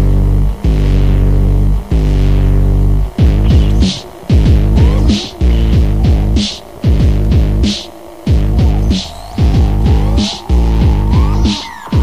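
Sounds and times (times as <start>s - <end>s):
distorted bass notes sliding down: 0.0s - 12.0s
electronic dance music: 3.2s - 12.0s.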